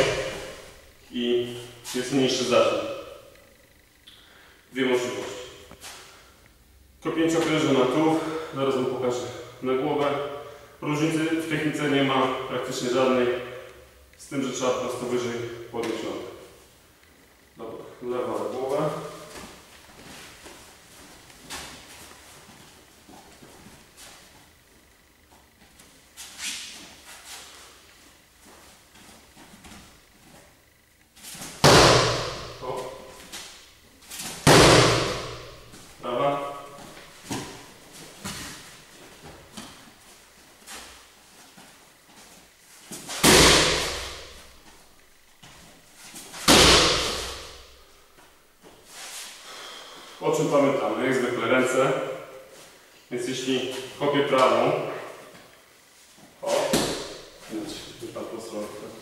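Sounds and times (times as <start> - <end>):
kicks slapping a pad: 0.0 - 0.6, 31.5 - 33.4, 34.3 - 35.8, 43.1 - 44.5, 46.4 - 47.8, 56.5 - 57.2.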